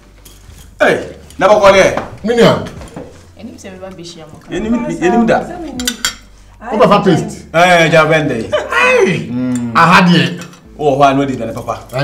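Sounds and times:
forks clinking on plates: 0.0 - 1.4, 5.7 - 6.3, 10.4 - 10.7, 11.4 - 12.0.

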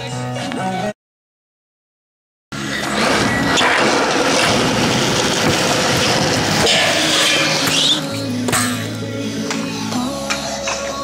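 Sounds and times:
scooter wheels rolling on concrete: 2.8 - 8.2.

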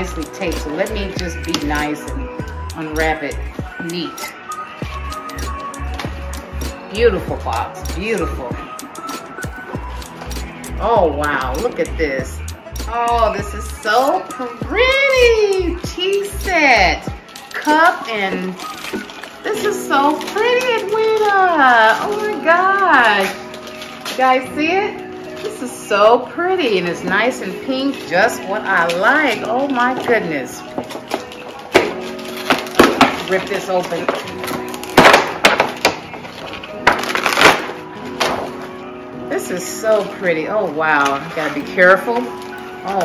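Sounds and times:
background music with low beat: 0.0 - 43.0
plastic wrapping crinkling: 13.1 - 43.0.

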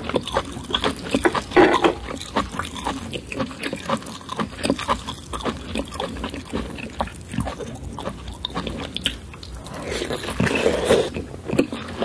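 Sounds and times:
wet chewing mouth sounds: 0.0 - 12.0.

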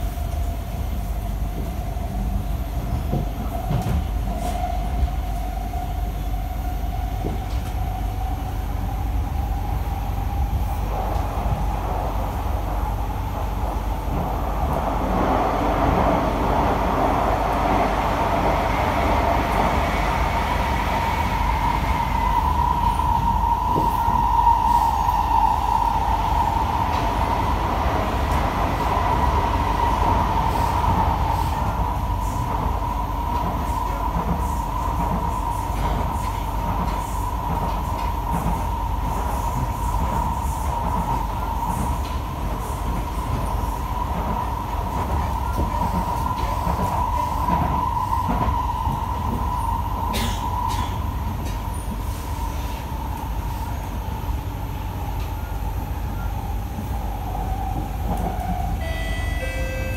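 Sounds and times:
train carriage rumble: 0.0 - 59.9.

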